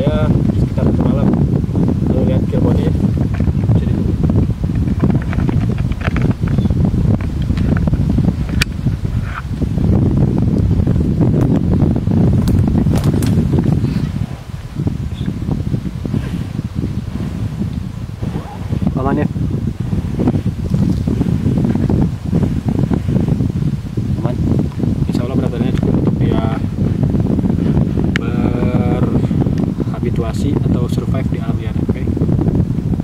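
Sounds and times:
low rumble on microphone: 0.0 - 33.0.

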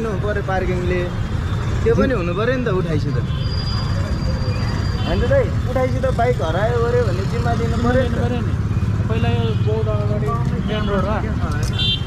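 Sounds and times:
men talking: 0.0 - 3.4, 5.0 - 11.8.

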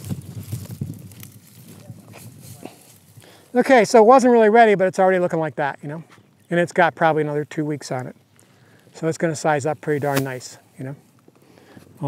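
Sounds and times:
rustling of leaves and soil: 0.0 - 12.0.

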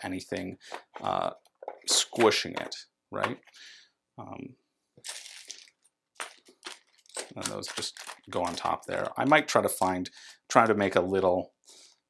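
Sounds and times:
plastic bag crinkling: 5.0 - 9.4.

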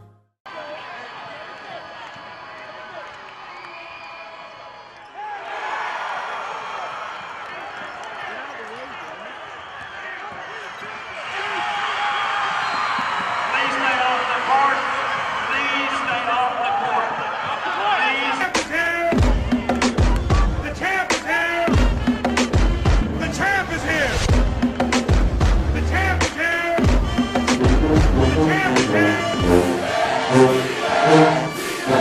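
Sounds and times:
crowd cheering and screaming: 0.5 - 18.5, 27.6 - 32.0.

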